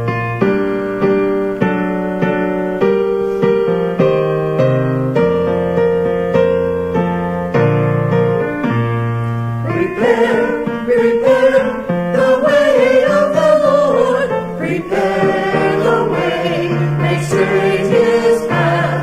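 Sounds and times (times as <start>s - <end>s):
digital piano: 0.0s - 19.0s
choir singing a hymn: 9.6s - 19.0s.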